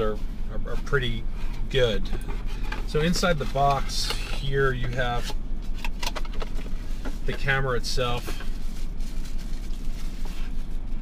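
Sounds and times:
low rumble in car cabin: 0:00.0 - 0:11.0
packaging rustling: 0:08.2 - 0:10.9.

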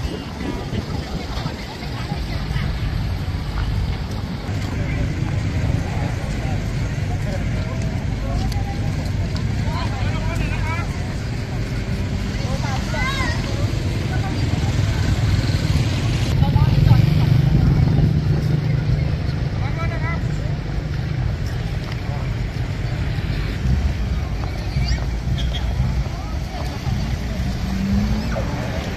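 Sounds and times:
steady low street rumble: 0:00.0 - 0:28.9.

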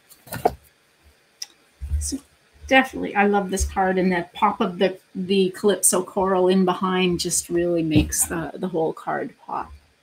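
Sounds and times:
low bump: 0:07.1 - 0:08.5.

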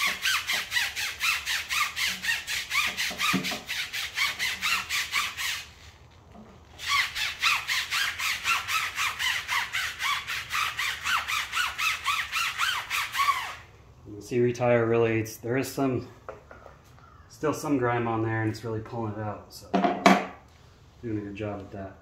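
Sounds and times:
brush scrubbing tire squeaking: 0:00.0 - 0:13.6.

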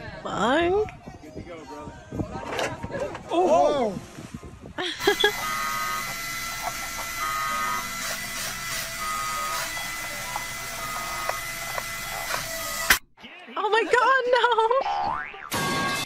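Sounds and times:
small electric motor whirring: 0:05.0 - 0:13.0.

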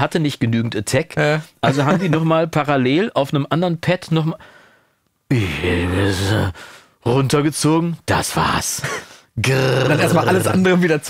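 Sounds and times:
man's breathy vocal sound: 0:04.4 - 0:07.0.

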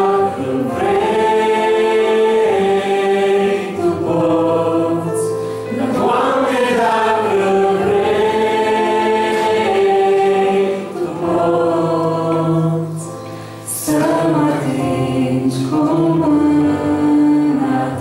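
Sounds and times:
keyboard accompaniment: 0:00.0 - 0:18.0
man and woman singing in harmony: 0:00.0 - 0:18.0.

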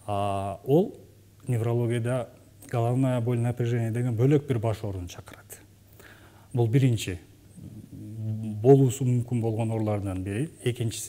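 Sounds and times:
man speaking: 0:00.0 - 0:05.7, 0:06.5 - 0:11.0
faint breathy sounds: 0:05.9 - 0:06.6.

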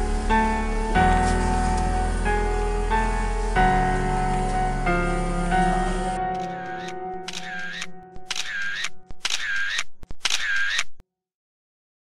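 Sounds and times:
music with held notes: 0:00.0 - 0:08.2
sharp clicks: 0:06.4 - 0:11.0.

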